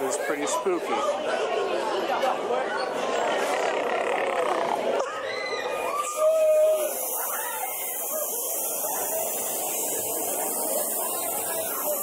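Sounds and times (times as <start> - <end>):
steady hiss: 6.5 - 12.0.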